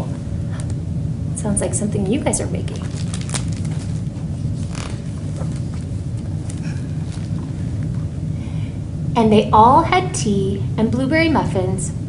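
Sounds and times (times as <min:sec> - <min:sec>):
steady low rumble: 0:00.0 - 0:12.0
book page turning: 0:02.8 - 0:07.4.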